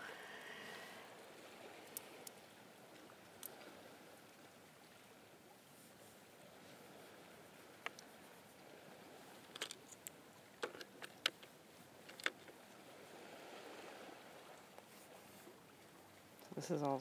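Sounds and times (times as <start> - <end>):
faint steady hiss: 0.0 - 17.0.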